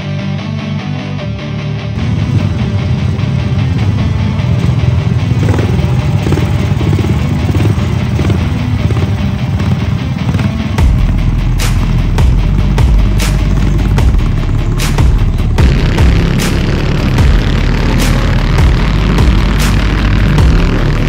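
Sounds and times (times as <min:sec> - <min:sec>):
background rock music: 0:00.0 - 0:21.0
kart engines running: 0:02.0 - 0:21.0
deep boom: 0:10.8 - 0:20.8.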